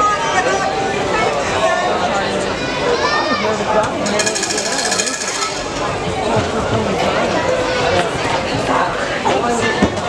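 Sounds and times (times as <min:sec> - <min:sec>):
crowd voices: 0:00.0 - 0:10.0
hand bell ringing: 0:04.2 - 0:05.8.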